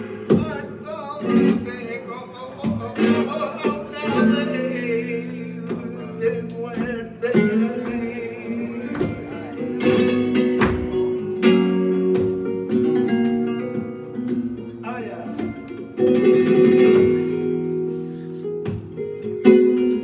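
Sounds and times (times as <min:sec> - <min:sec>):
flamenco guitar playing: 0:00.0 - 0:20.0.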